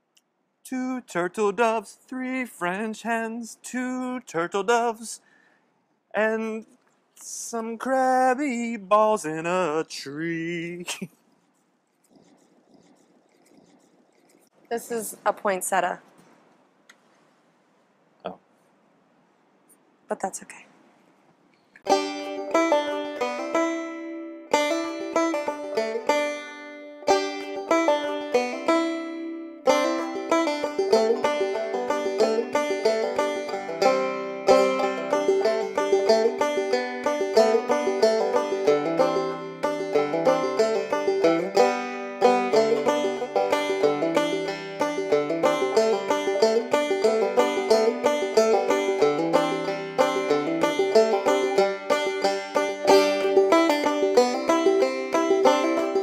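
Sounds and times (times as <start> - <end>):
banjo-like picked string music: 21.9 - 56.0.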